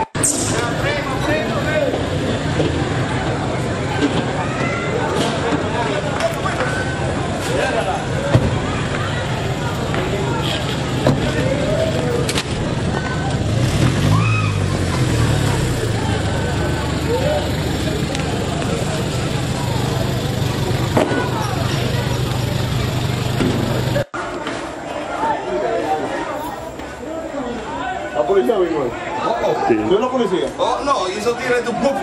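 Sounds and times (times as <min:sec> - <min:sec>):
voices and shouts: 0:00.0 - 0:32.0
vehicle engine running: 0:07.1 - 0:24.1.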